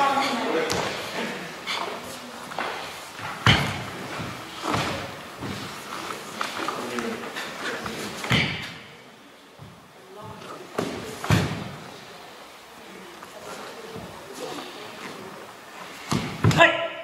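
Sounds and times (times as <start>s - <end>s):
bare feet on wooden floor: 0.6s - 8.5s.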